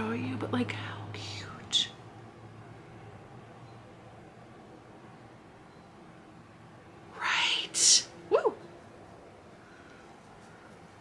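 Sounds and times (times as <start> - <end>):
woman whispering: 7.1 - 8.4.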